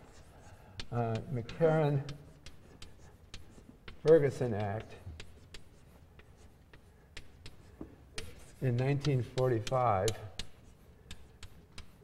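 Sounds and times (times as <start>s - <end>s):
chalk writing on blackboard: 0.0s - 12.0s.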